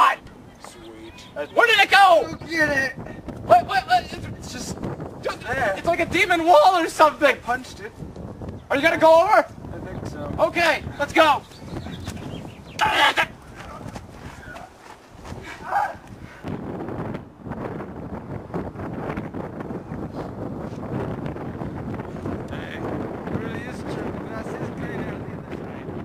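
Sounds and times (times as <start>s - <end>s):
wind noise on microphone: 0.0s - 26.0s.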